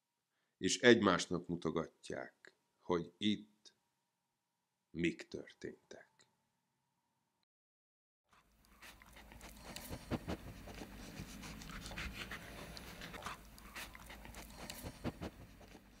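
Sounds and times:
dog panting: 0:08.3 - 0:16.0.

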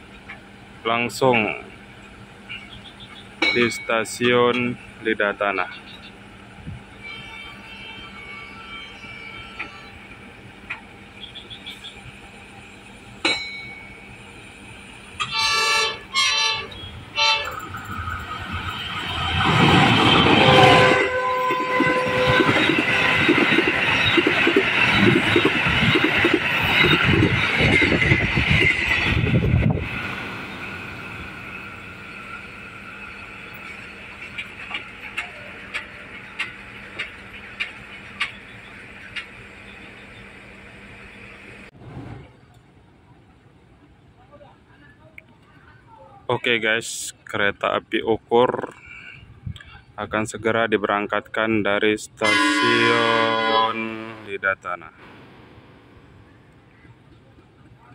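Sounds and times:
train horn blasts: 0:06.6 - 0:10.3, 0:15.2 - 0:17.7, 0:19.3 - 0:24.0, 0:52.2 - 0:54.4
train wheels on rails: 0:09.5 - 0:42.7.

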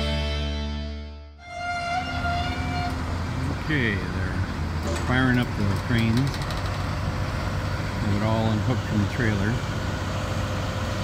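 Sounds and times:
music: 0:00.0 - 0:02.9
crane diesel engine humming: 0:00.0 - 0:11.0.

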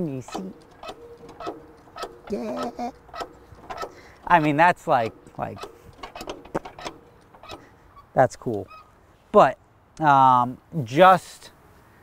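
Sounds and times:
metal clicks and knocks: 0:00.0 - 0:08.8.

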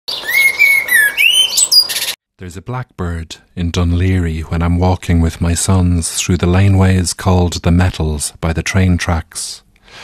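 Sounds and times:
blackbird singing: 0:00.1 - 0:02.2.

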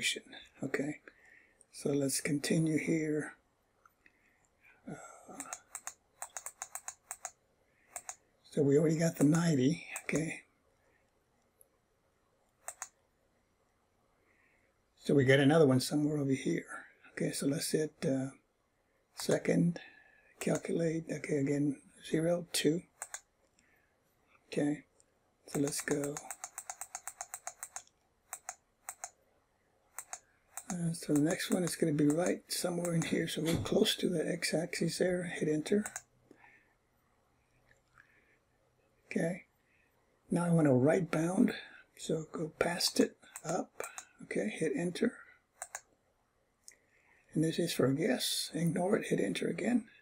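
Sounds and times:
computer key clicks: 0:05.3 - 0:08.2, 0:12.6 - 0:13.0, 0:23.0 - 0:23.3, 0:25.5 - 0:29.2, 0:30.0 - 0:33.2, 0:35.8 - 0:36.1, 0:43.3 - 0:44.1, 0:45.6 - 0:45.9.

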